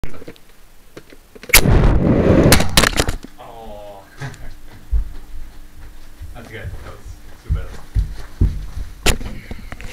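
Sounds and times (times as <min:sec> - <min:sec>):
foam rocket air launch blast: 0:01.5 - 0:02.9
rocket striking and landing knocks: 0:01.5 - 0:03.2
air rushing past microphone: 0:01.6 - 0:02.8.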